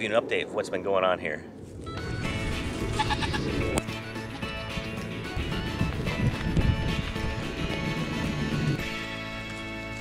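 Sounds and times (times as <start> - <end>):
background music sustained notes: 1.8 - 10.0
goats bleating: 2.8 - 3.6.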